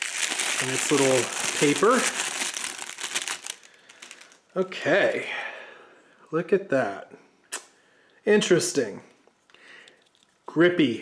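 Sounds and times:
paper wrapper crinkling: 0.0 - 4.4.

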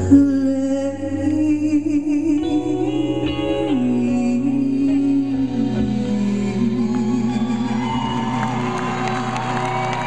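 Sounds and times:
audience whooping and whistling: 6.8 - 10.0.

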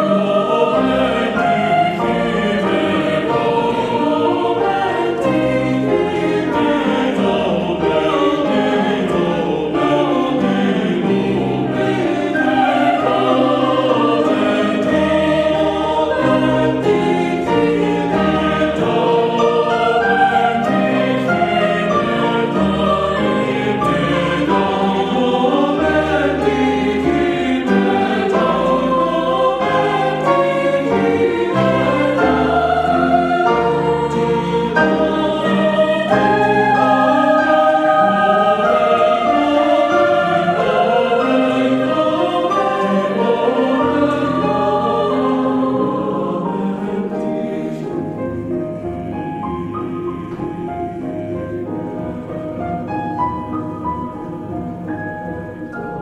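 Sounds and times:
mixed choir singing: 0.0 - 56.0
piano accompaniment: 0.0 - 56.0.

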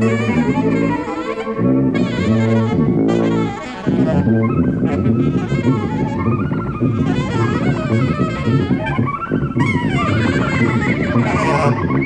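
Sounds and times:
alto saxophone: 0.0 - 12.0
drums: 0.0 - 12.0
tuba: 0.0 - 12.0.

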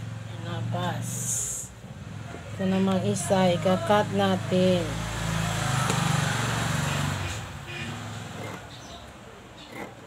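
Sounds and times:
vehicle engine passing by: 0.0 - 9.0.

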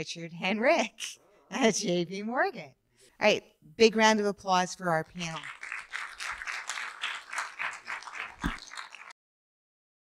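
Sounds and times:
audience applauding: 5.4 - 9.2.

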